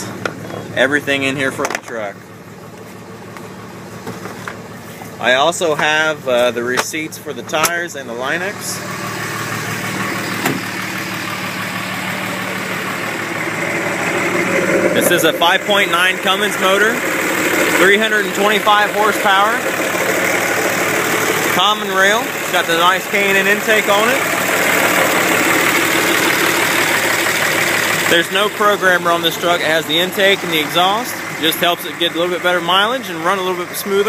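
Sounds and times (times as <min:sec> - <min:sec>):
diesel engine idling: 0:00.0 - 0:34.0.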